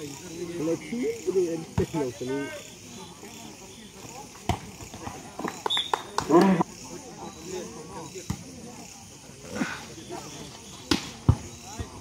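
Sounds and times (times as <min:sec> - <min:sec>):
night insects chirring: 0:00.0 - 0:12.0
sharp smack: 0:10.9 - 0:11.1.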